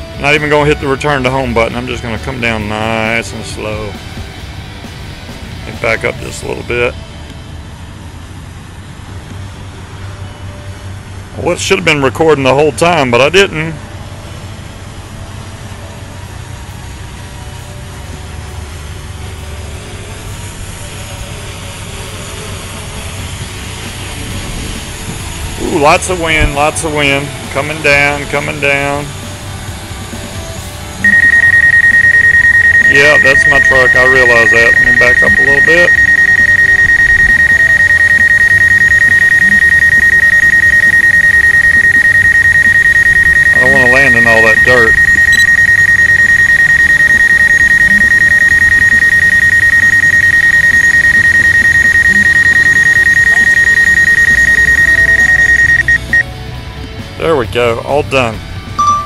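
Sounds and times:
high-pitched pulsing warning beeps: 31.0s - 56.3s, 58.8s - 59.0s.

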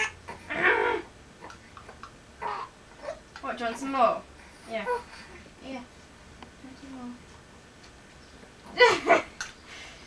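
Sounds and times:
infant squawking: 0.0s - 1.1s, 2.4s - 3.2s.

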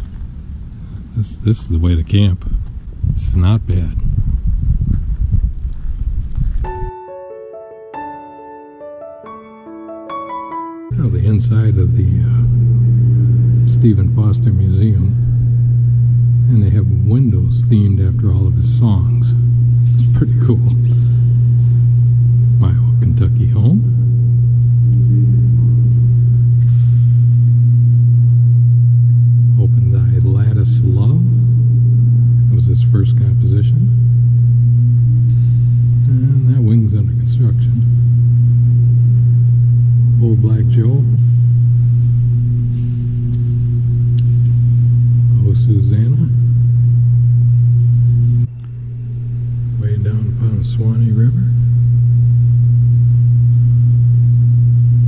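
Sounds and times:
loud low hum: 0.0s - 7.0s, 10.9s - 55.0s
faint steady tones: 10.9s - 55.0s.

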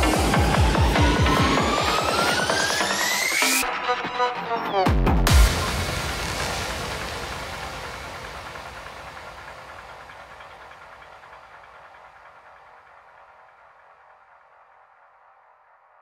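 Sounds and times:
electronic music tail: 0.0s - 15.3s.

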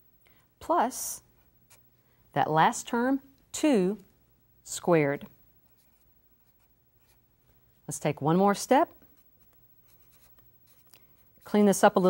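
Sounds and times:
marker writing on paper: 9.2s - 10.9s.

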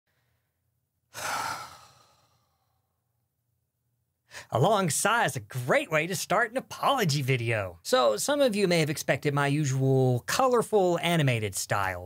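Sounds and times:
man sighing: 1.1s - 2.8s.

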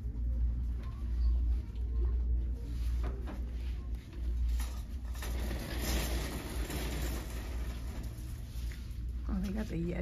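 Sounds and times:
shopping cart rolling on hard floor: 4.5s - 8.7s.

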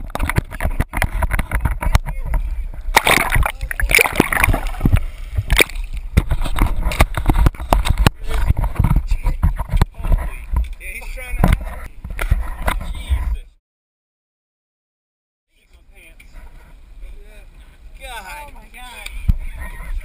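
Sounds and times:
water sloshing and gurgling: 0.0s - 12.9s.

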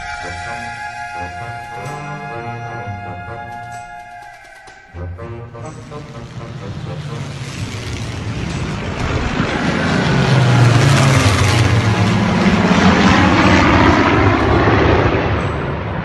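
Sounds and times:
propeller planes flying over: 4.6s - 16.0s.

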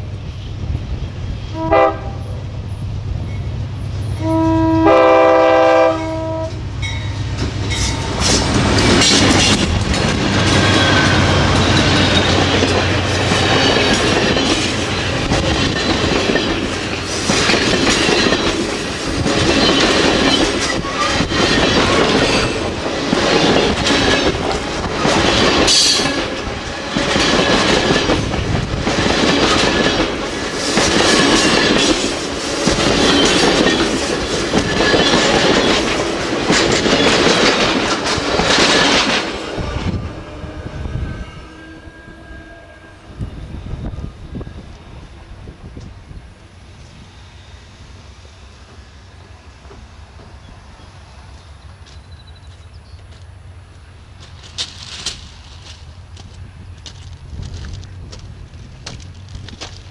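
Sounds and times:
diesel locomotive engine droning: 0.0s - 59.9s
train wheels clattering over rails: 6.7s - 40.2s.

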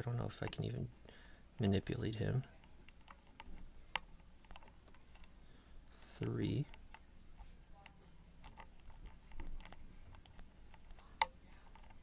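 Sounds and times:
lock pick ticking and scraping: 2.6s - 5.4s, 6.6s - 12.0s.

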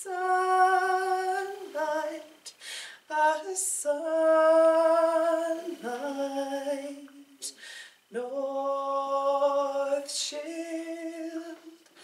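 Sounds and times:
woman singing unaccompanied: 0.0s - 12.0s
short breath: 2.5s - 3.0s, 7.5s - 8.1s.

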